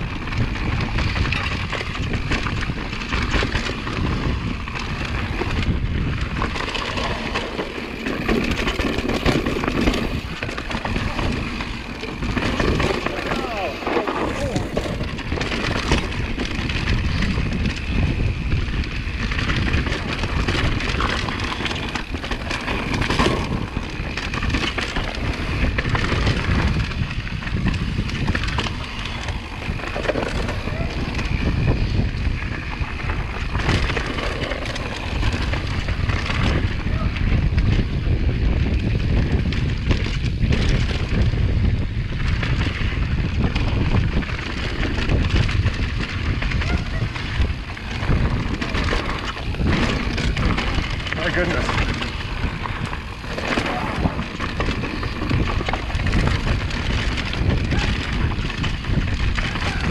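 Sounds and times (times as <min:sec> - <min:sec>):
bike knocks and rattles: 0:00.0 - 0:59.9
bike tyres rolling over rocks: 0:00.0 - 0:59.9
wind buffeting microphone: 0:00.0 - 0:59.9.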